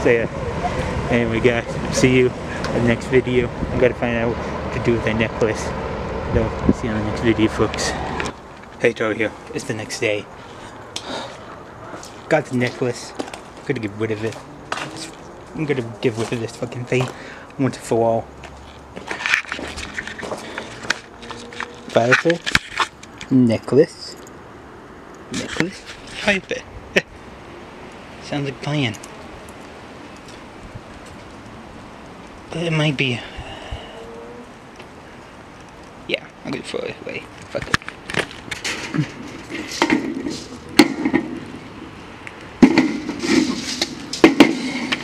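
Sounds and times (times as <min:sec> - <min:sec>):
footsteps: 0:10.4 - 0:17.4, 0:18.4 - 0:23.3
rustling handling noise: 0:18.4 - 0:23.3
sharp knocks: 0:38.6 - 0:41.5, 0:42.6 - 0:45.0.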